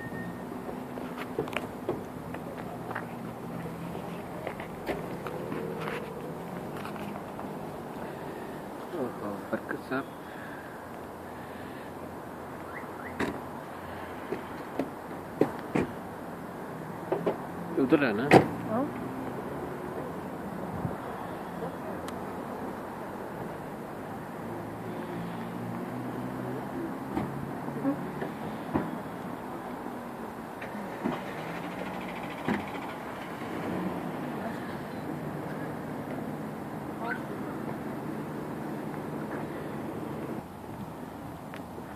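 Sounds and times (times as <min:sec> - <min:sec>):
city traffic hum: 0:00.0 - 0:41.9.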